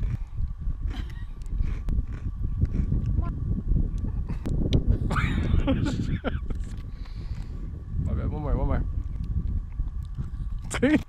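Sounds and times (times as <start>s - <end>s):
wind buffeting microphone: 0.0s - 11.0s
woman laughing: 5.0s - 6.6s.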